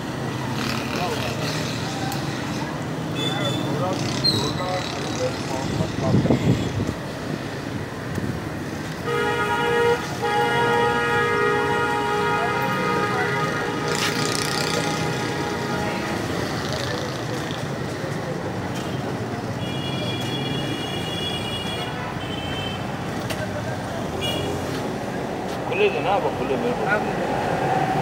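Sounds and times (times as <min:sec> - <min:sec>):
busy street traffic: 0:00.0 - 0:28.0
held vehicle horn: 0:09.0 - 0:16.3.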